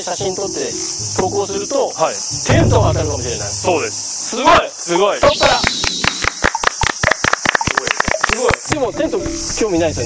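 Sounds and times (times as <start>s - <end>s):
people clapping: 5.5s - 8.9s.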